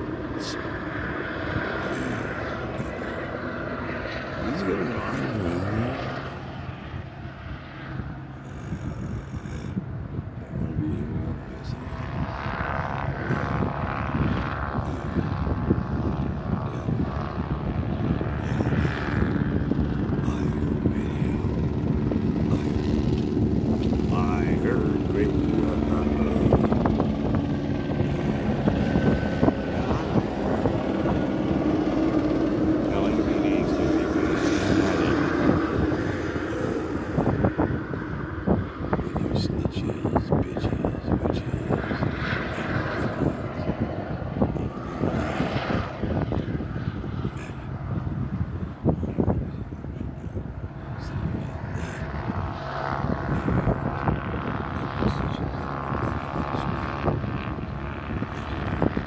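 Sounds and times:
aircraft engine drone: 0.0s - 59.0s.

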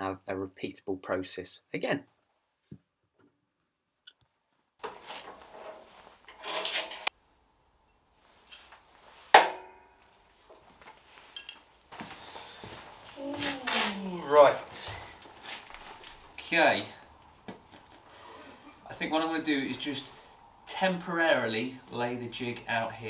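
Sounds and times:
steel parts scraping and clinking: 5.4s - 7.1s, 11.2s - 11.7s.

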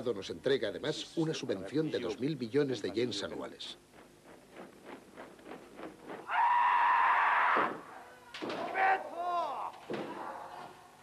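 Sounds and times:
loud high drawn-out shout: 6.3s - 9.7s.

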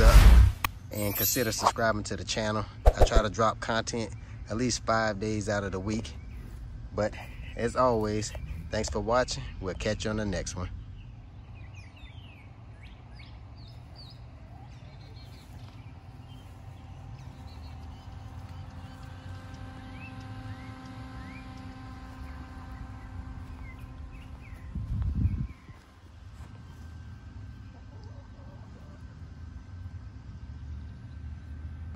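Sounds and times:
steady hum: 0.0s - 30.8s
birds chirping: 0.8s - 29.2s
wind rumble on microphone: 21.5s - 26.7s.

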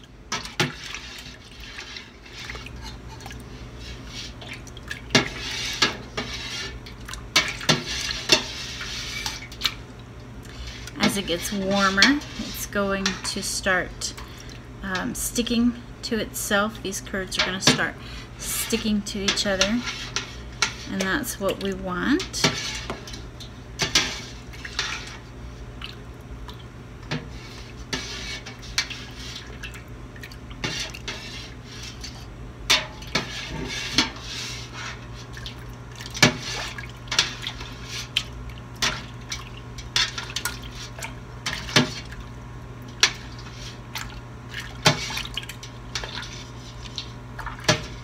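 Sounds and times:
liquid sloshing in a pot: 0.0s - 48.0s
steady low hum: 0.0s - 48.0s.

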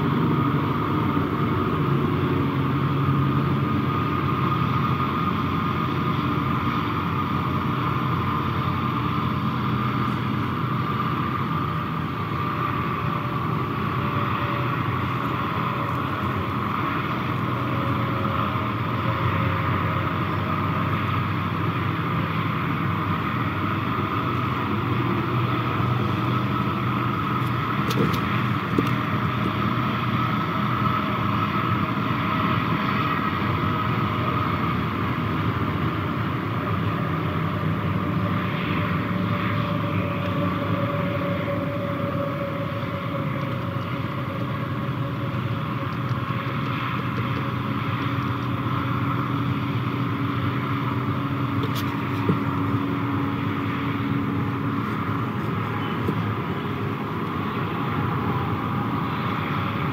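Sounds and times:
large motor engine drone: 0.0s - 59.9s.

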